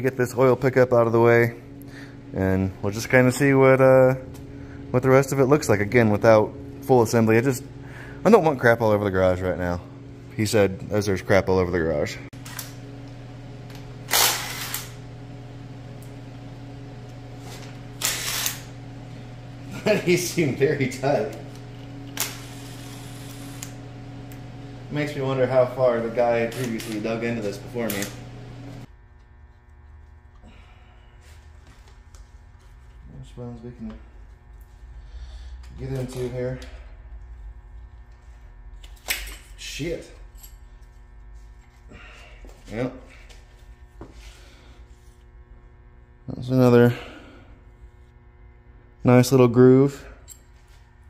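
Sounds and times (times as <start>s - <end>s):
steady electrical hum: 0.0s - 51.0s.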